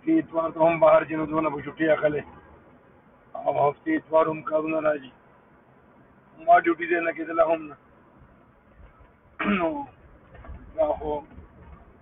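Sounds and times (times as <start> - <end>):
faint low rumble: 7.5 - 12.0
man clearing throat: 9.4 - 9.8.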